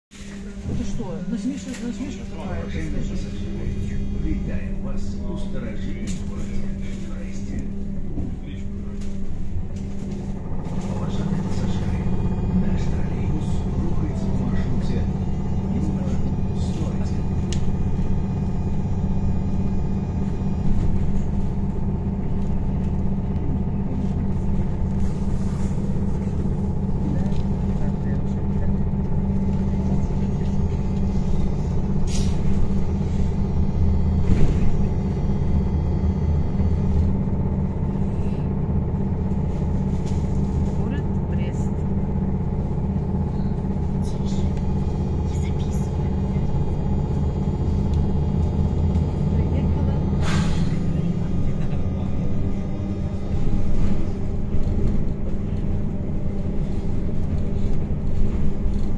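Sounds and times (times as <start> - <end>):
constant hum: 0.1 - 58.9
wheels and road rumble: 0.1 - 58.9.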